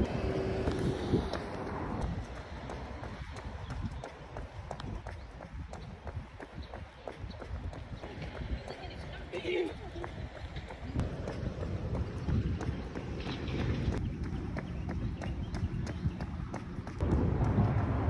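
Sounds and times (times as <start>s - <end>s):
footsteps jogging on pavement: 0.0s - 17.2s.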